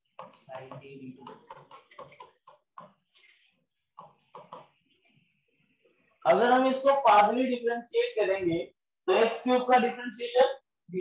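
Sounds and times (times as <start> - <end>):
stylus tapping and scratching on tablet: 0.0 - 7.5.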